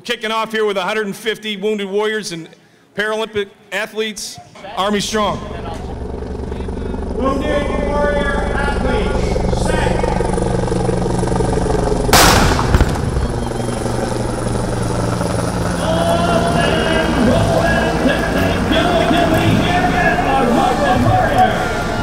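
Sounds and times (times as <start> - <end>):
steady low drone: 4.8 - 22.0
cannon blast: 12.1 - 14.5.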